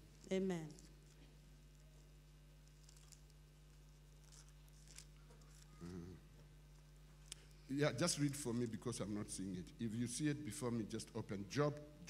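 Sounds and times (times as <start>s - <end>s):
low electrical hum: 0.0s - 12.0s
murmured voice: 5.8s - 6.3s.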